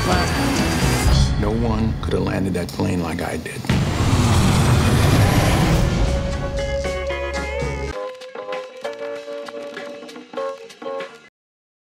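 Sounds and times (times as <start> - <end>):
trailer music: 0.0 - 2.5, 3.7 - 8.2
deep rumble: 3.7 - 6.8.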